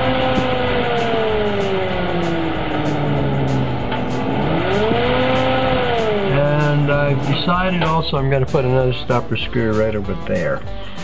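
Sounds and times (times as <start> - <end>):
whine rising and falling: 0.0 - 8.7
steady hum: 0.0 - 9.3
exhaust fan air rushing: 0.0 - 9.4.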